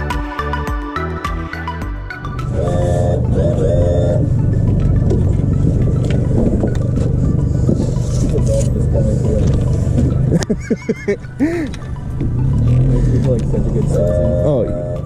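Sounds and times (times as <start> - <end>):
outboard motor running: 2.4 - 15.0
wind noise: 2.5 - 10.4.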